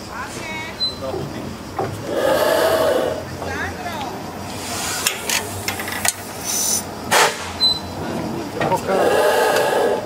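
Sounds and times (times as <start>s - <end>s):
engine valve gear hissing: 0.7s - 3.6s, 4.3s - 8.0s, 8.7s - 10.0s.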